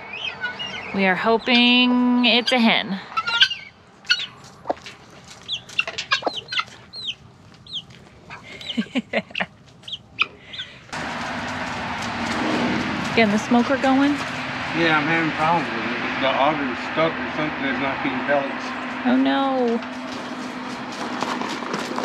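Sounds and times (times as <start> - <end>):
chick peeping: 0.0 - 11.0
steady rushing noise: 10.9 - 22.0.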